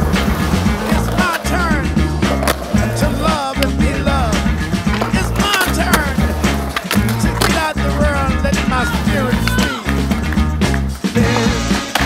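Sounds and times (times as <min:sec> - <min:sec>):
background music with beat and bass: 0:00.0 - 0:12.0
skateboard wheels rolling on concrete: 0:00.0 - 0:12.0.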